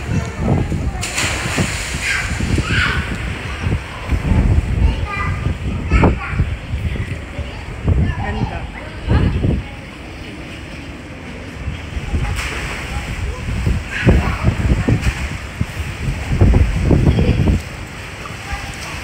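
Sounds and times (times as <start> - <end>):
pool water sloshing and lapping: 0.0 - 19.0
wind buffeting microphone: 0.0 - 19.0.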